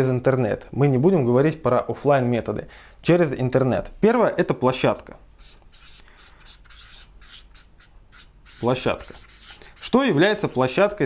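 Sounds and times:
marker scratching on paper: 5.4 - 11.0.

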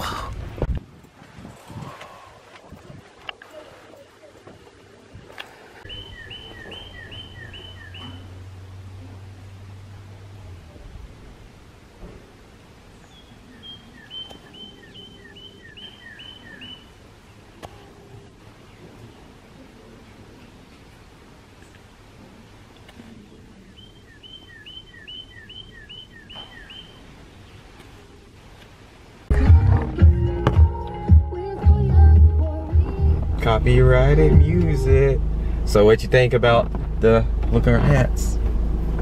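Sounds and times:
songbird singing: 1.5 - 11.0, 11.8 - 39.0
low steady hum: 26.8 - 39.0.

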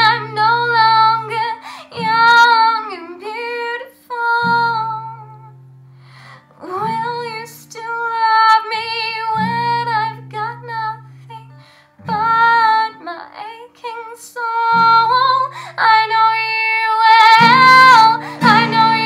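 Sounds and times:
girl singing with vibrato: 0.0 - 5.6, 6.2 - 19.0
acoustic guitar chords: 0.0 - 13.3, 14.5 - 19.0.

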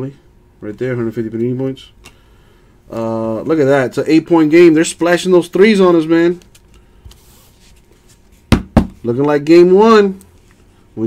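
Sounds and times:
plastic card holders tapped: 8.5 - 9.0.

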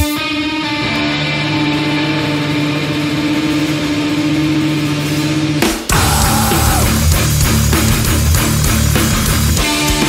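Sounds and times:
distorted electric guitar drone: 0.0 - 10.0.

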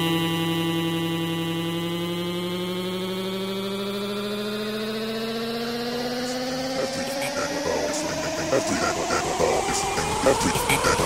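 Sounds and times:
rising synthesizer chord: 0.0 - 11.0.

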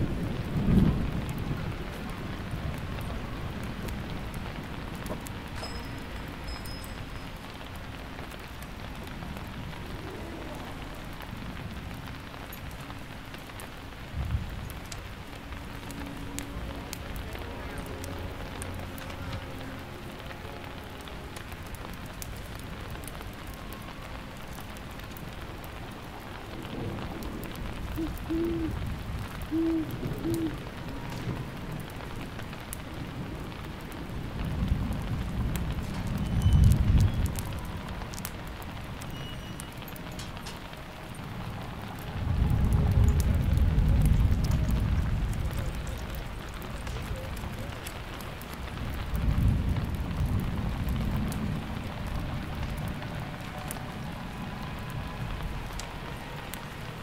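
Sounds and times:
steady rain: 0.0 - 57.0
thunder rumbling: 0.0 - 57.0
low hooting notes: 14.8 - 26.0.

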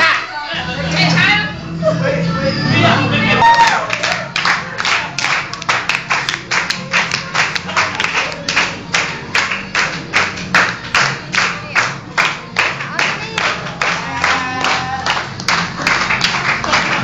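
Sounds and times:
music: 0.0 - 17.0
people clapping in unison: 3.4 - 17.0.

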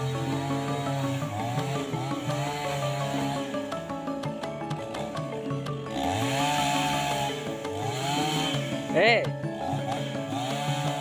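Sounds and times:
background music: 0.0 - 11.0
chainsaw revving: 0.0 - 11.0.

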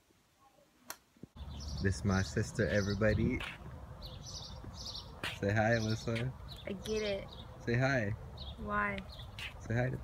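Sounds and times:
street ambience: 0.0 - 10.0
man talking: 1.8 - 3.6, 5.3 - 6.4, 7.6 - 8.2, 9.6 - 10.0.

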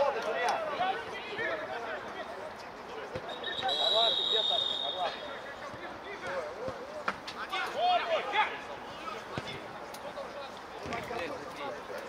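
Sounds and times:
referee's whistle blast: 3.3 - 5.2.

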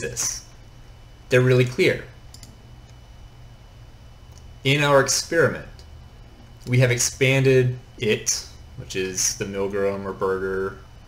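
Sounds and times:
low steady hum: 0.0 - 11.0
computer mouse clicking: 2.3 - 3.0.

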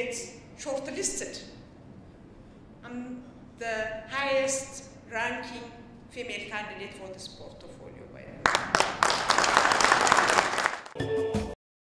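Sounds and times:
audience applauding: 8.5 - 11.0
music with steady tones: 11.0 - 11.6.

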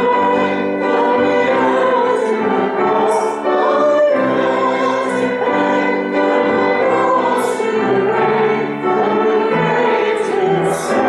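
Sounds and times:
group of voices singing: 0.0 - 11.0
violin: 0.0 - 11.0.

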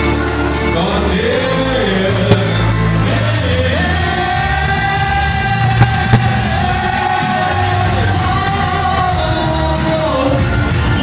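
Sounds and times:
backing music with heavy bass: 0.0 - 11.0.

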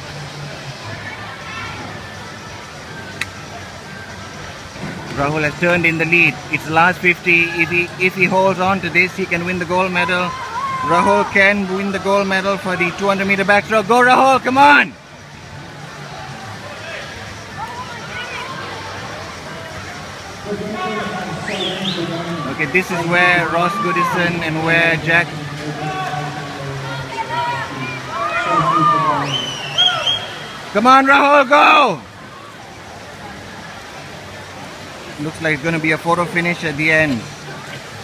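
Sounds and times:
swimmers splashing: 0.0 - 38.0
crowd cheering and shouting: 5.2 - 15.0, 16.0 - 33.7.

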